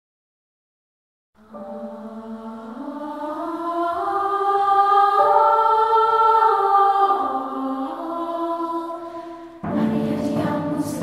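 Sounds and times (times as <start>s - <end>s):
choir singing held chords: 1.4s - 11.0s.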